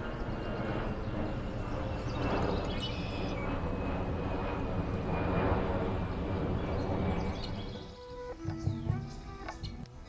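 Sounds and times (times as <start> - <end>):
airplane flying overhead: 0.0 - 10.0.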